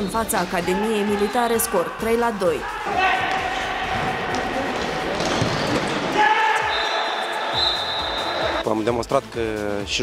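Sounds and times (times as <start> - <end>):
players shouting: 0.6 - 8.6.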